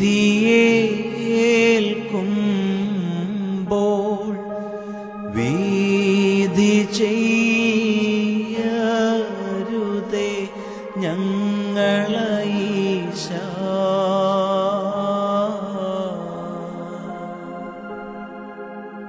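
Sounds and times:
man singing devotional song: 0.0s - 18.1s
keyboard accompaniment: 0.0s - 19.0s.

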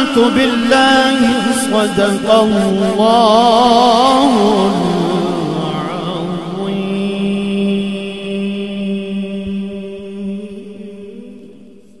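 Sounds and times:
man reciting melodically: 0.0s - 11.6s.

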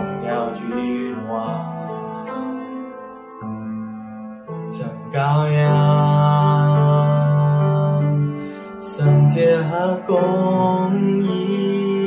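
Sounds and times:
man singing a long held note: 0.0s - 2.8s, 4.7s - 12.0s.

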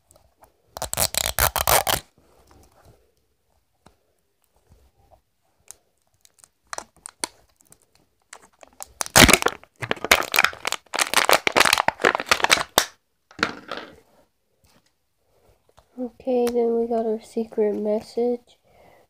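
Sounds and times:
toy wrapping crinkling and tearing: 0.7s - 2.1s, 5.6s - 13.8s.

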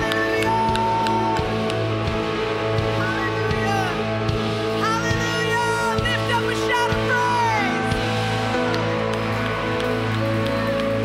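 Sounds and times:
live worship band music: 0.0s - 11.0s.

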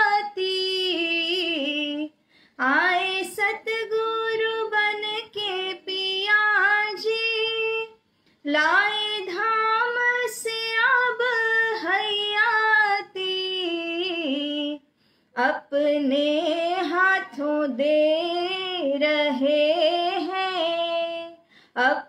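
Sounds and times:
woman singing devotional song: 0.0s - 22.0s.

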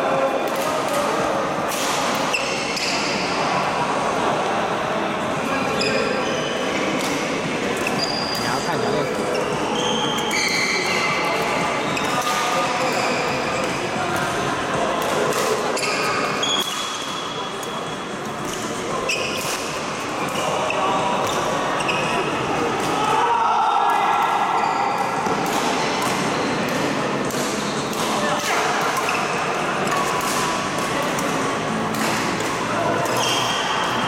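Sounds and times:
racket hitting shuttlecock: 24.9s - 34.0s.

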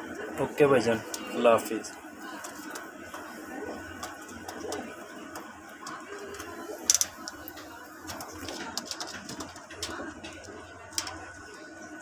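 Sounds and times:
pigeons cooing: 2.1s - 12.0s.

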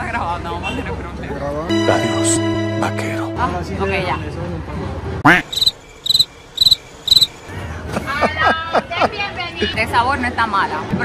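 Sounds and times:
high cricket chirps: 5.5s - 7.5s.

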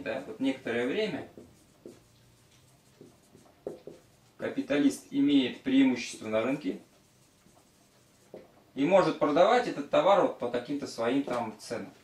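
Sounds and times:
marker writing on whiteboard: 0.0s - 8.7s.

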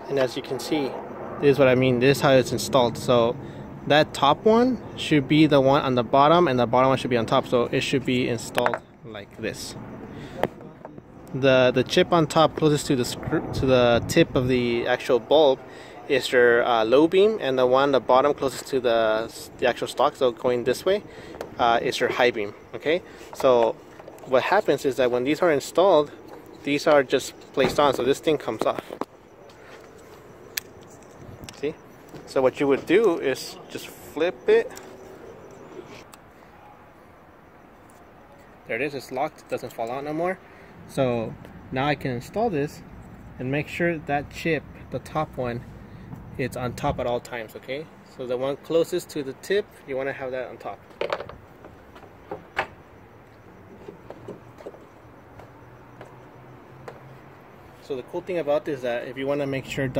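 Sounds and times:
faint background noise: 0.0s - 59.9s.

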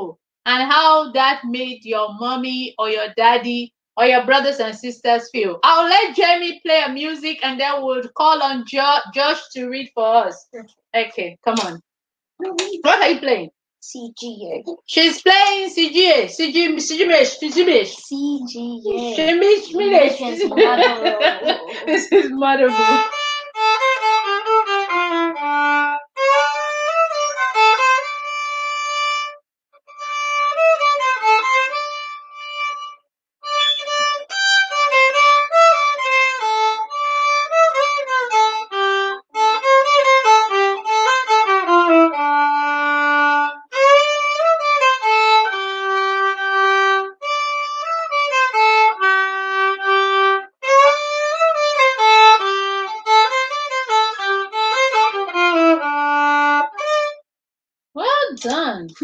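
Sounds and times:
solo violin melody: 18.9s - 57.2s.

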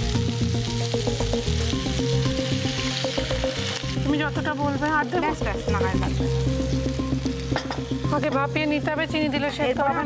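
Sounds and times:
fruit slices sizzling in oil: 0.0s - 10.0s.

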